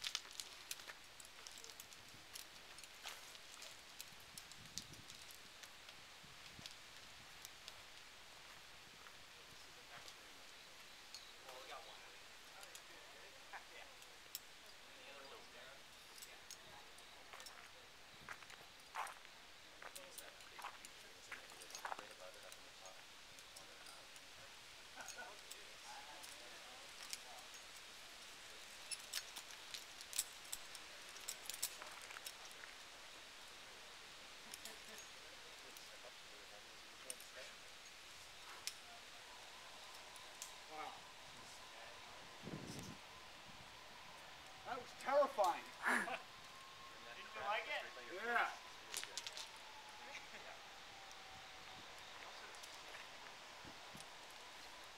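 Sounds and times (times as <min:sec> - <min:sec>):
faint steady whine: 0:00.0 - 0:54.9
people's voices: 0:38.4 - 0:54.7.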